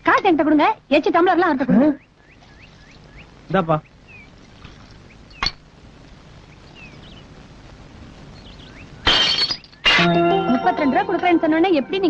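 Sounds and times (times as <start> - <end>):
glass tumbler shattering: 9.0 - 10.5.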